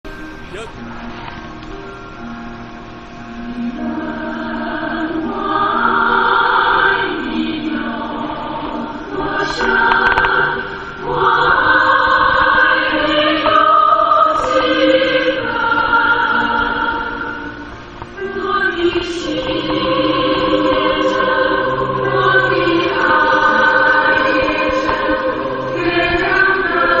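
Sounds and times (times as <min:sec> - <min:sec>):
choir singing slow song: 0:03.1 - 0:27.0.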